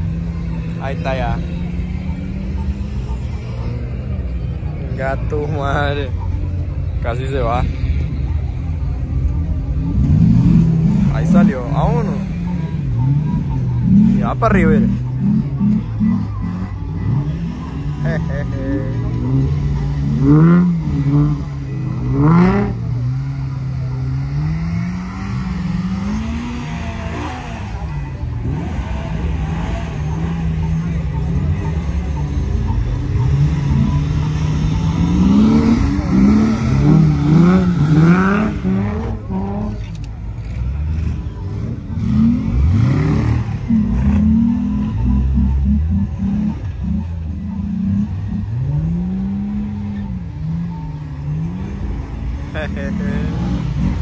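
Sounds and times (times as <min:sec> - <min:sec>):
off-road engines revving: 0:00.0 - 0:54.0.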